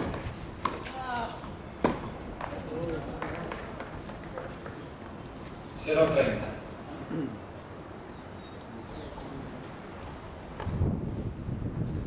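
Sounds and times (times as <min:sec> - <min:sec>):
footsteps on clay court: 0:00.0 - 0:05.7.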